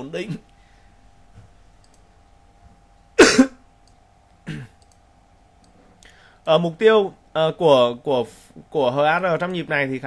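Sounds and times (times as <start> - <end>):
man coughing: 3.2 - 3.6, 4.4 - 4.8.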